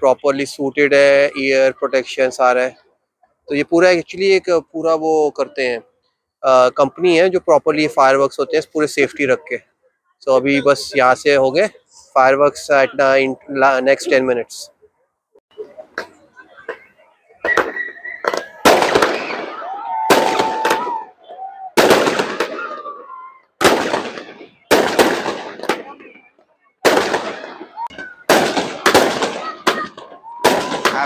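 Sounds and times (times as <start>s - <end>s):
fireworks bangs echoing: 17.4s - 21.1s, 21.8s - 31.0s.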